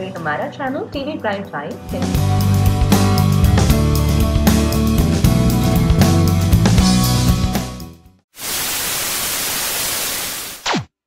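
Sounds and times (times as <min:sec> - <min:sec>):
music: 0:00.0 - 0:08.2
tv static hiss: 0:08.4 - 0:10.9.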